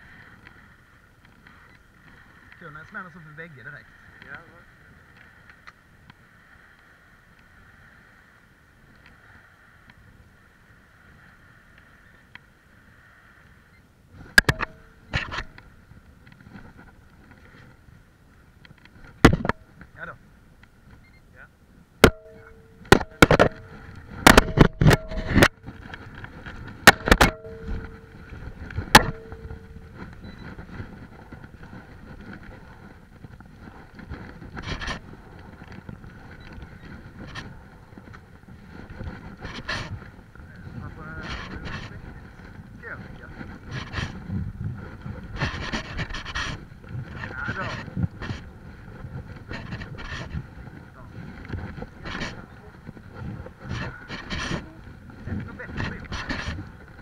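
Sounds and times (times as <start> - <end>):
sleeve rubbing on microphone: 23.4 - 57.0.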